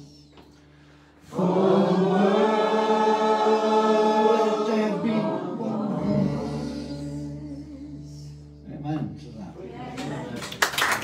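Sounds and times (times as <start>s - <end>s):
group of voices singing: 1.2s - 8.3s.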